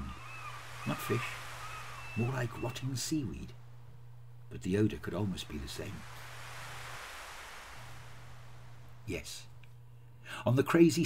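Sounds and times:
small waves breaking on a beach: 0:00.0 - 0:03.0, 0:05.4 - 0:09.0.

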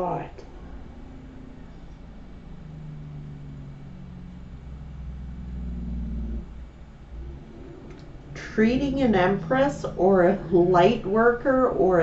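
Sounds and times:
low rumble with faint hum: 0:00.0 - 0:12.0.

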